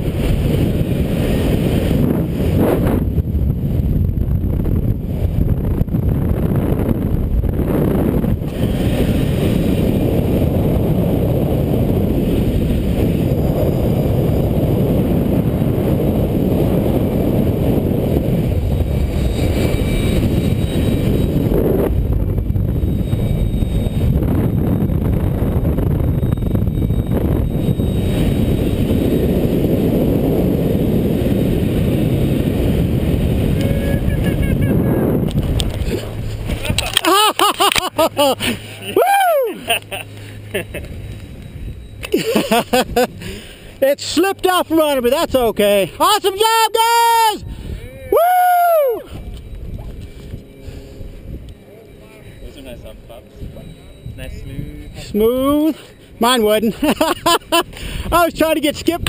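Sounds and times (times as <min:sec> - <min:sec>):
wind rumbling on microphone: 0:00.0 - 0:59.0.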